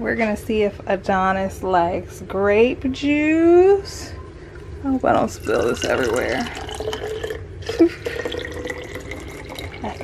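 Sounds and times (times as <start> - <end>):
liquid trickling and dripping: 8.1 - 10.0.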